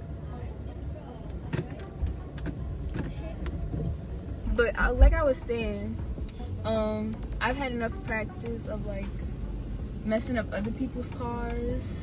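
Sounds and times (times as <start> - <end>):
woman speaking: 4.5 - 9.2, 10.0 - 12.0.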